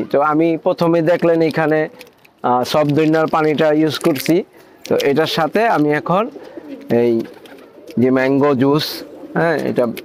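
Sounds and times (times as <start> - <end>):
pigeons cooing: 4.5 - 10.0.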